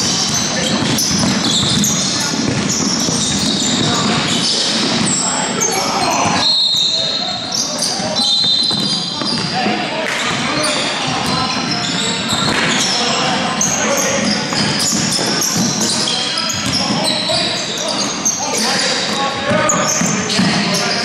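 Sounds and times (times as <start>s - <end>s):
basketball bouncing on court: 0.0s - 5.2s, 7.8s - 18.2s, 19.1s - 20.9s
sneakers squeaking: 0.0s - 21.0s
players calling out: 0.2s - 21.0s.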